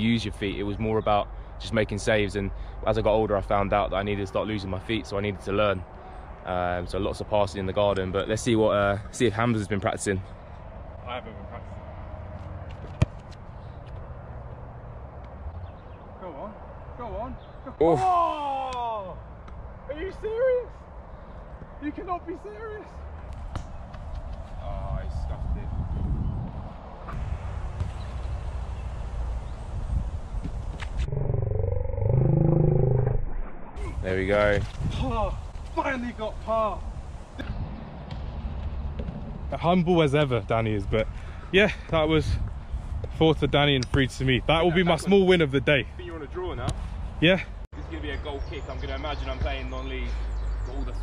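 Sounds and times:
football kicked off grass: 12.7s - 13.4s
wind rumble on microphone: 23.4s - 39.8s, 40.4s - 44.6s.

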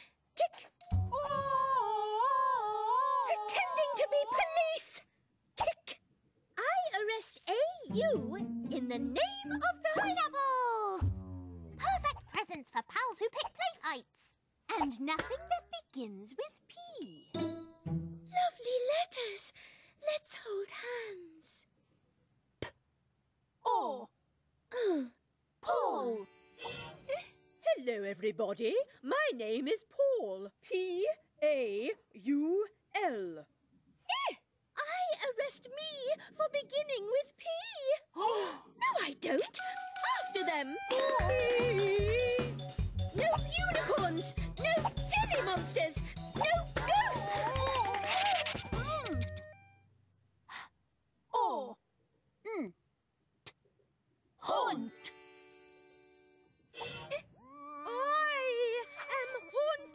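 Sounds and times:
music: 0.8s - 1.5s, 7.8s - 12.0s, 17.0s - 18.4s, 26.2s - 27.7s, 39.6s - 49.8s, 54.9s - 56.8s
cartoon voices falling in pitch: 57.5s - 59.9s.

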